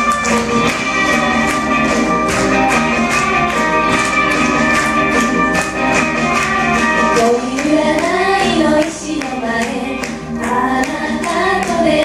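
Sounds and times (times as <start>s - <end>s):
backing music with steady beat: 0.0s - 12.0s
women singing together: 7.2s - 12.0s.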